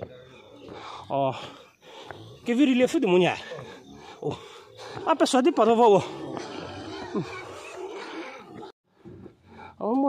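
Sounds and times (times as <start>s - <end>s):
pigs grunting: 0.0s - 10.0s.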